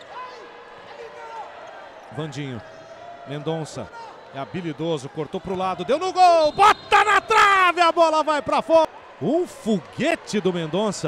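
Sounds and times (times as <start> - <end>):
faint arena ambience: 0.0 - 11.0.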